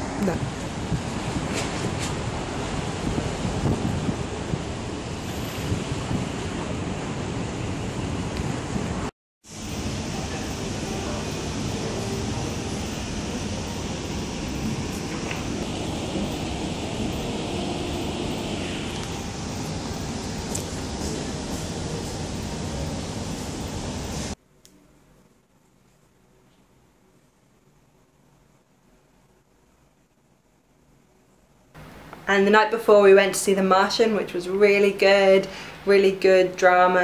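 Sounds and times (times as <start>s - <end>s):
wind on microphone: 0.0s - 9.1s
waterside ambience: 0.0s - 24.4s
cafe background hum: 9.5s - 37.0s.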